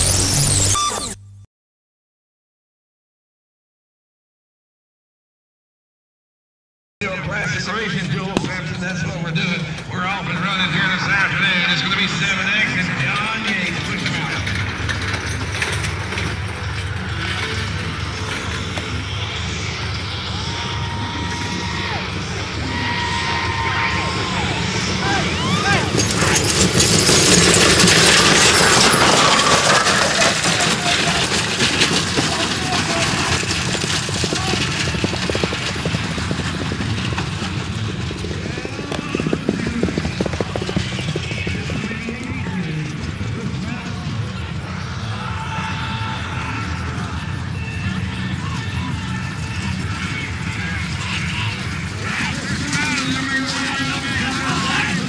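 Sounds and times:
horses galloping hoofbeats: 7.0s - 55.0s
voices: 7.0s - 55.0s
wooden wagons rattling: 10.0s - 55.0s.

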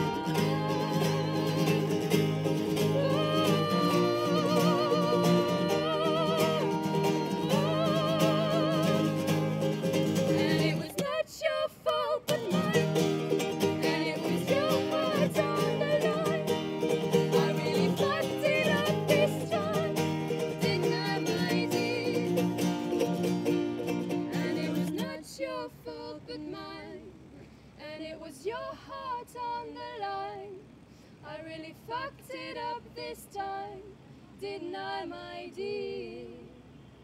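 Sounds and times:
strummed acoustic guitar: 0.0s - 11.2s, 12.3s - 25.2s
women singing: 0.0s - 23.3s, 24.0s - 36.8s
ukulele: 0.0s - 27.3s.

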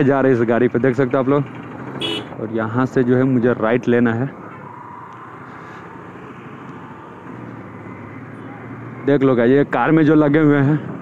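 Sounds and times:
motorcycle engine running: 0.4s - 2.4s.

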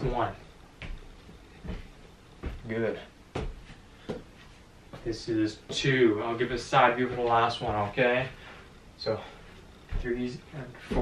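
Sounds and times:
footfall thumps on floor: 1.6s - 2.7s, 3.3s - 4.3s.

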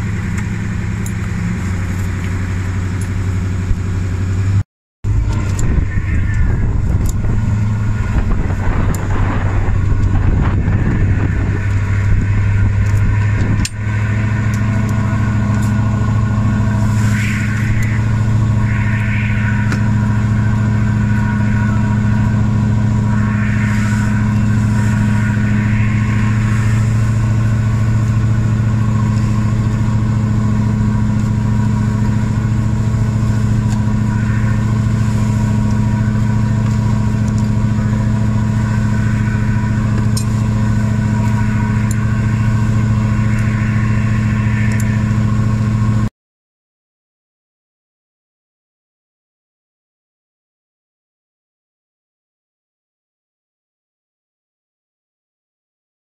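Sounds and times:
boat engine droning: 0.0s - 46.1s.

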